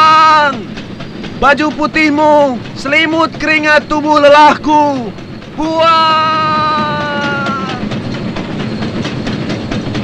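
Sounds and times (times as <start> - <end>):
steam locomotive chugging past: 0.0 - 10.0.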